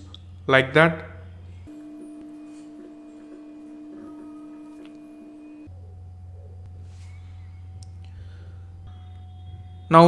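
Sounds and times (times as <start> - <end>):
steady humming tone: 0.0 - 10.0.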